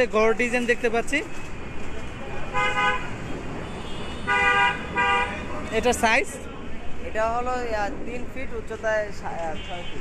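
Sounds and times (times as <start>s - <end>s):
traffic noise: 0.0s - 10.0s
vehicle horn honking: 2.6s - 5.4s.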